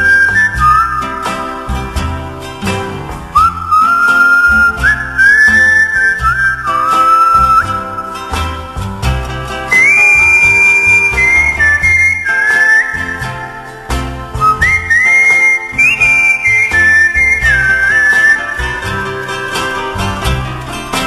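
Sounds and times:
country band accompaniment: 0.0s - 21.0s
whistled melody: 0.0s - 21.0s.

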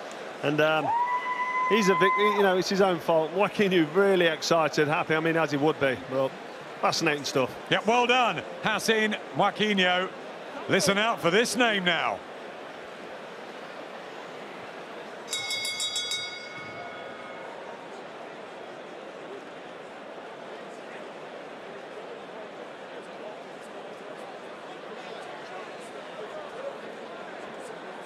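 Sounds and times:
boxing ring bell struck rapidly: 15.3s - 17.9s.

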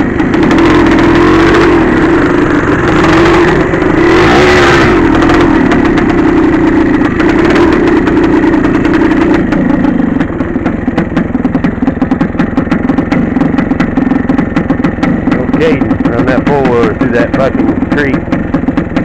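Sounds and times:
two-stroke dirt bike engine: 0.0s - 19.0s.

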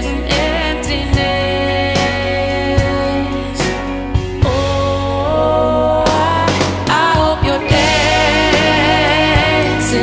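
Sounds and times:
ballad with wavering singing: 0.0s - 10.0s.

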